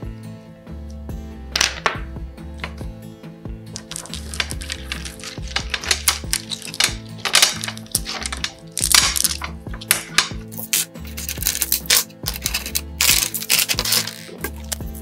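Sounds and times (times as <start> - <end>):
background music with bass line: 0.0 - 15.0
mosaic tiles clinking together: 1.6 - 2.0, 3.7 - 14.3
tiles scraping: 3.7 - 15.0.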